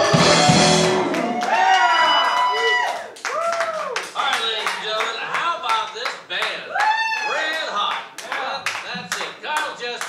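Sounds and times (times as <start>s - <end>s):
audience applauding: 0.0s - 10.0s.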